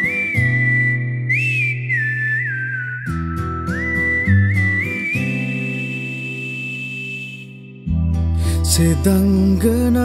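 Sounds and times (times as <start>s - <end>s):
whistled melody: 0.0s - 9.0s.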